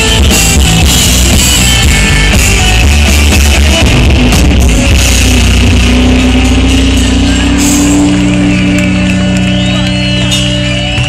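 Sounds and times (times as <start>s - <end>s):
live band through loud speakers: 0.0s - 11.0s
crowd whooping and cheering: 1.3s - 11.0s.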